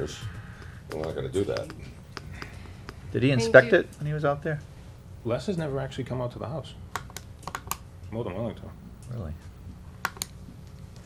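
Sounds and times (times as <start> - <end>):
low room hum: 0.0 - 11.0
laptop keystrokes: 7.0 - 7.8, 10.0 - 10.4.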